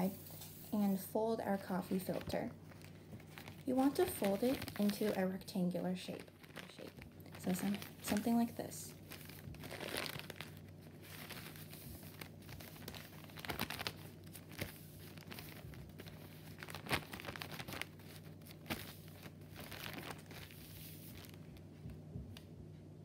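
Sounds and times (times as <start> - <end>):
paper crackle: 0.0 - 22.0
paper filter crinkling: 0.0 - 22.0.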